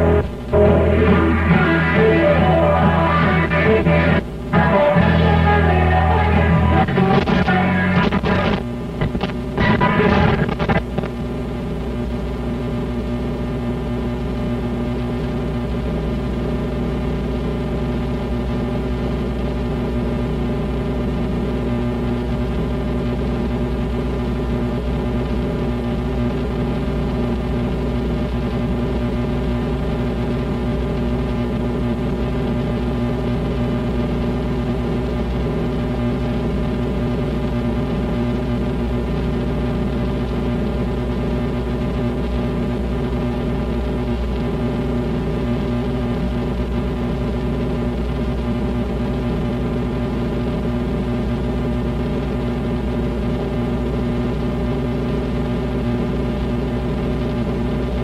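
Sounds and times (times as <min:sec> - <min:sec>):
deep hum: 0:00.0 - 0:10.5
electrical mains buzz: 0:00.0 - 0:58.0.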